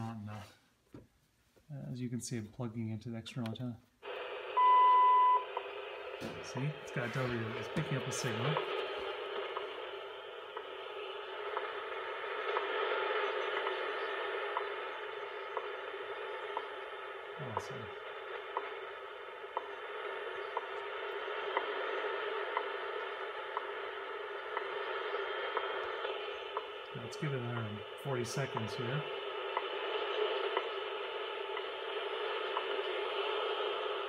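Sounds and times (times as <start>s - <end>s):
radio static hiss: 0.0s - 0.7s, 1.7s - 34.0s
time signal ticks: 11.5s - 33.0s.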